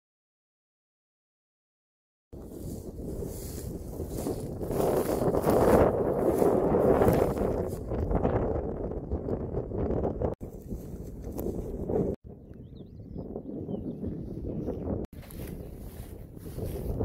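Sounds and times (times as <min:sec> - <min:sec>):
wind buffeting microphone: 0:02.4 - 0:17.0.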